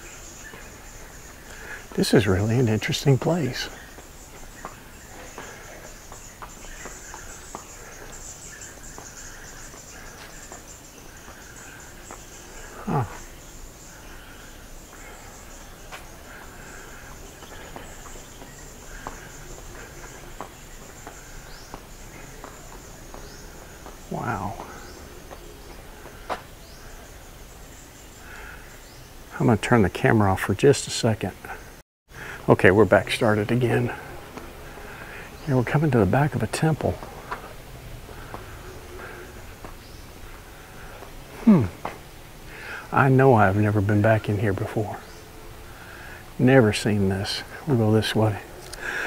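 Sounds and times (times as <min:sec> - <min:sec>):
insects chirring: 0:00.0 - 0:49.0.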